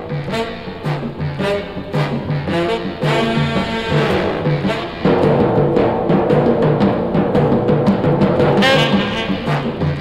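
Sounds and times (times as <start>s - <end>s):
background music with brass and drums: 0.0s - 10.0s
bright brass phrase: 0.2s - 6.4s, 8.5s - 10.0s.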